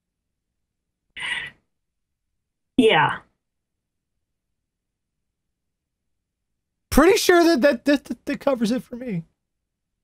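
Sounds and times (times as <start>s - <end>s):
man's voice: 6.9s - 9.2s.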